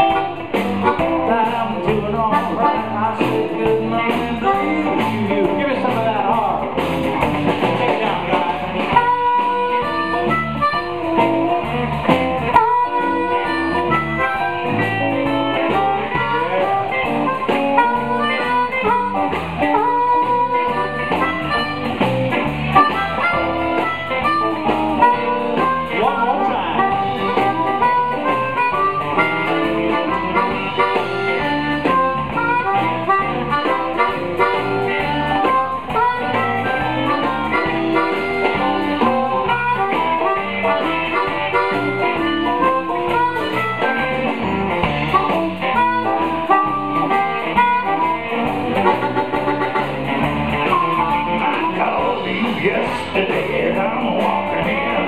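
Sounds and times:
amplified harmonica: 0.0 - 5.8, 8.6 - 53.3
blues band playing: 0.0 - 55.0.

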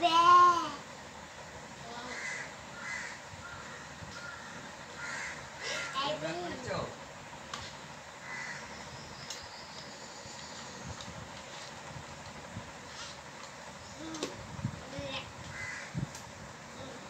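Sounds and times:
steady background hiss: 0.0 - 17.0
harsh bird calls: 1.9 - 6.2, 8.1 - 10.9, 15.5 - 16.0.

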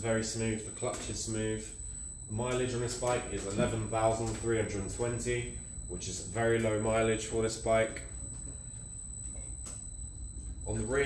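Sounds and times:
faint high-pitched whine: 0.0 - 11.0
steady low hum: 0.0 - 11.0.

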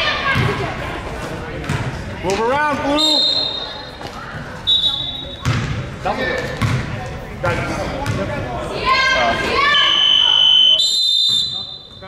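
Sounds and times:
referee's whistle blast: 4.7 - 5.4, 9.7 - 12.0.

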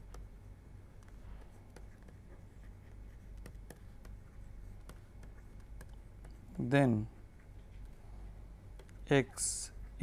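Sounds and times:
stylus scratching and tapping: 0.0 - 8.0, 8.7 - 9.1
low steady hum: 0.0 - 10.0.

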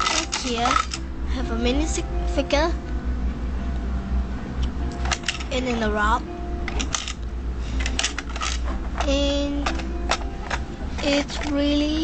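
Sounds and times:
plastic bricks clicking: 0.0 - 1.0.

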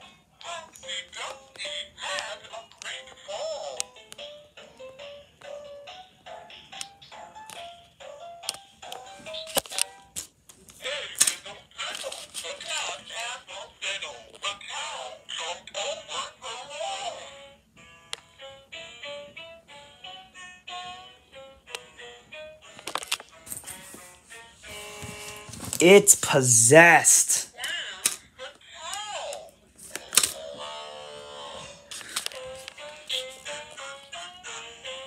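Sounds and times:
toy synthetic singing voice: 0.4 - 4.0, 12.7 - 17.6, 33.3 - 35.0.

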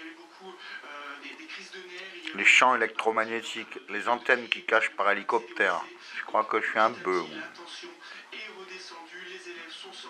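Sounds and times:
faint television sound: 0.0 - 10.0.

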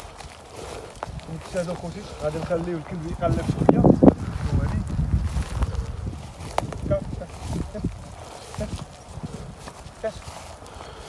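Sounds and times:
footsteps through leafy crop: 0.0 - 11.0.

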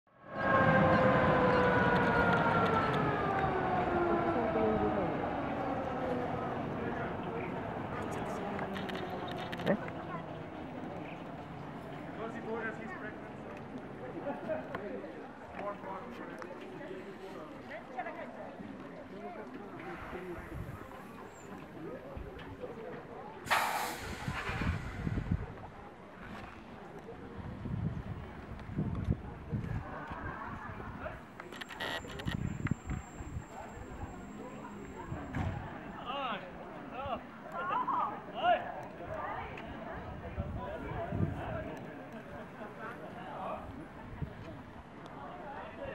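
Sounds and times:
murmur of voices: 0.3 - 45.9
train wheels rumbling on rails: 23.4 - 26.4.

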